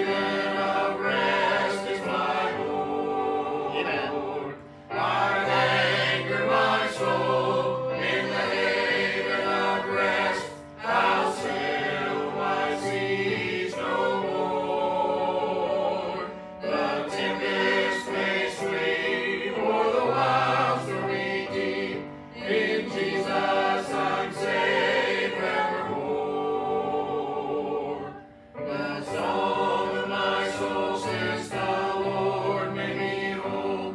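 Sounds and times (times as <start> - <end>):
choir singing a hymn: 0.0 - 33.9.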